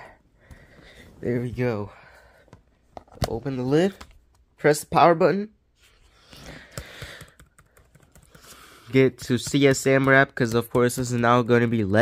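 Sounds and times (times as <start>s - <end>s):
laptop keyboard clicks: 6.7s - 8.4s.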